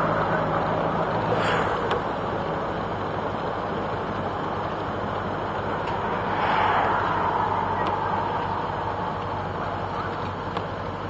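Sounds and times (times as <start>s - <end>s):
car engine running: 0.0s - 11.0s
wind and road noise: 0.0s - 11.0s.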